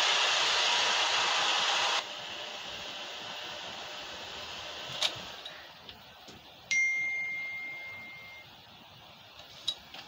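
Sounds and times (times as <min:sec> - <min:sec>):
bright ringing ding: 0:06.7 - 0:08.5.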